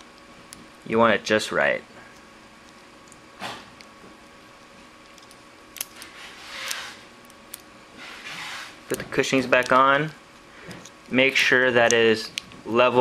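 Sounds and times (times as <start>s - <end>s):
short rubbing noises: 6.1s - 7.1s, 8.0s - 8.9s.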